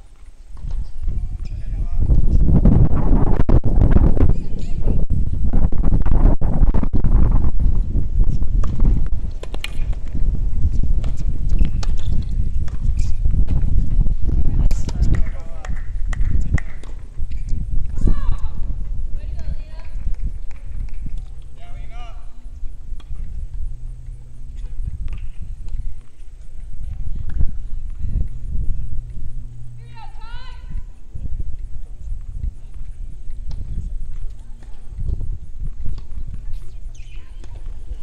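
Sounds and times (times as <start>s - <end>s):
low rumble: 0.9s - 38.0s.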